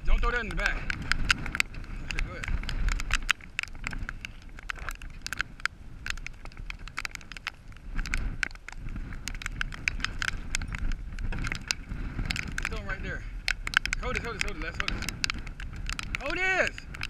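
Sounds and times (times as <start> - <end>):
raindrops tapping: 0.0 - 17.0
wind rumble on microphone: 0.0 - 17.0.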